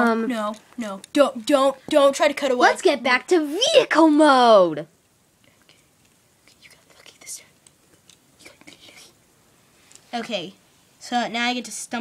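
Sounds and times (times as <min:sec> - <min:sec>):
soft whispering: 0:05.4 - 0:07.7, 0:08.3 - 0:09.2.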